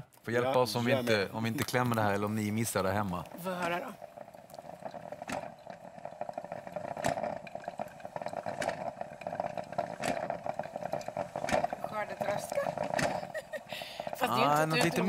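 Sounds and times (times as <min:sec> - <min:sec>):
coffee maker bubbling: 0:00.0 - 0:15.0.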